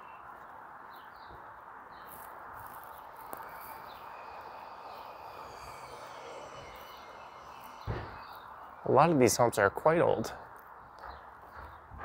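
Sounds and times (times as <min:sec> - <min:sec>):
bird chirps: 0:00.0 - 0:09.4
distant traffic hum: 0:00.0 - 0:12.0.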